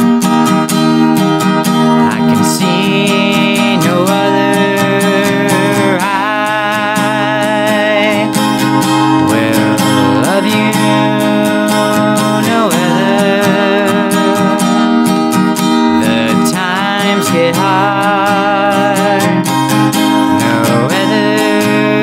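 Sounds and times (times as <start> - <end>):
strummed acoustic guitar: 0.0 - 22.0
man singing held notes: 20.3 - 22.0.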